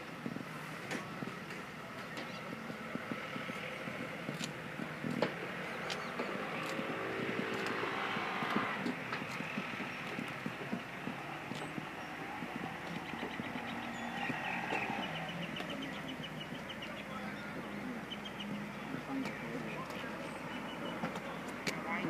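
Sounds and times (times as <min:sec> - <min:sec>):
rapid high ticks: 0:02.6 - 0:14.9
scattered clicks: 0:03.5 - 0:07.8.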